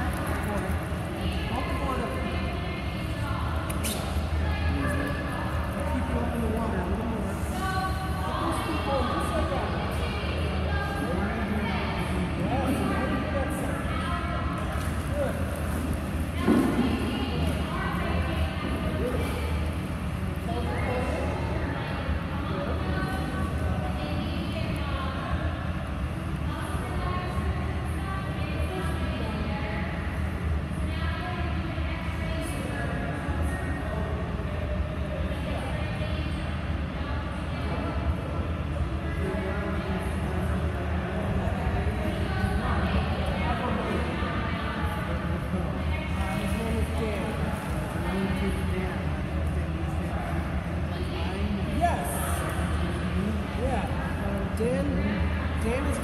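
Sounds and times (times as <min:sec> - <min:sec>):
echoing voices talking: 0:00.0 - 0:56.0
faint background music: 0:00.0 - 0:56.0
steady low hum: 0:00.0 - 0:56.0.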